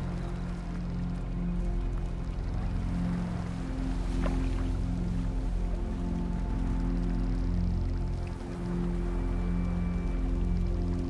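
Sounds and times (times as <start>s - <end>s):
ambient drone music: 0.0s - 11.0s
gentle water sound: 0.0s - 11.0s.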